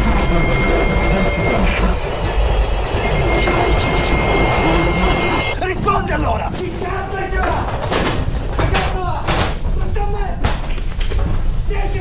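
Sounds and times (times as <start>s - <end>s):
thin high tone: 0.0s - 5.7s
loud steady rumbling: 0.0s - 6.2s.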